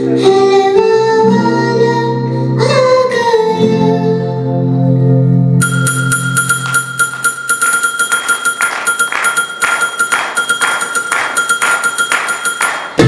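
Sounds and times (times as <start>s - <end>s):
held keyboard tone: 5.6s - 13.0s
steady beat of claps: 6.4s - 13.0s.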